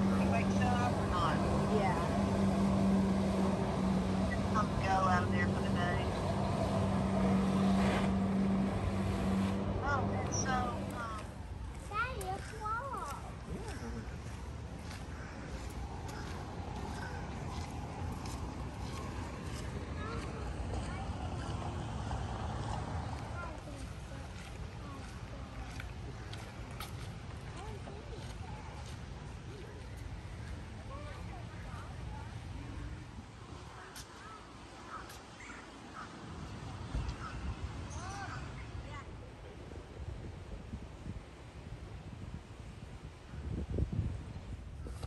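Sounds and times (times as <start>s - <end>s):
voices: 0.0s - 39.9s
watercraft engine drone: 0.0s - 40.6s
wind rumble on microphone: 36.6s - 45.0s.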